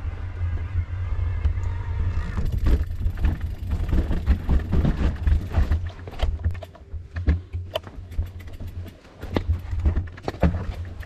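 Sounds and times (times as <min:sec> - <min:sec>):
bike rolling over rocky trail: 0:02.2 - 0:11.0
bike frame knocks and rattles: 0:02.4 - 0:11.0.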